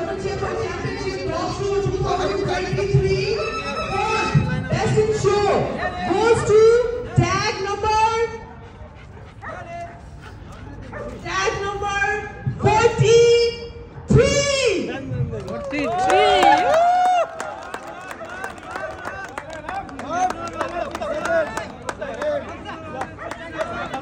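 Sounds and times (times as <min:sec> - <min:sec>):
people talking quietly: 0:00.0 - 0:16.4, 0:17.3 - 0:24.0.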